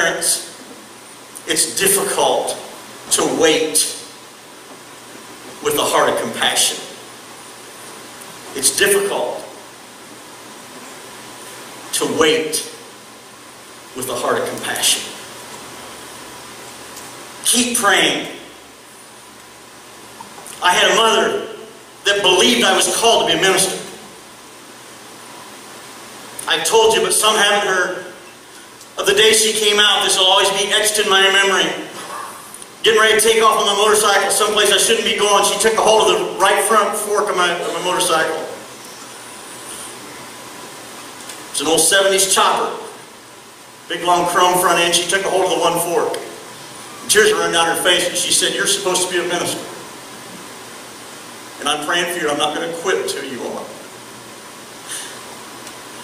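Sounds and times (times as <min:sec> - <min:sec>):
steady background hiss: 0:00.0 - 0:56.0.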